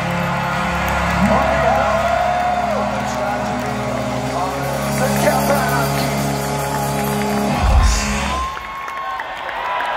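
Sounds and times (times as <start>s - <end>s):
punk band guitars and bass: 1.0s - 8.6s.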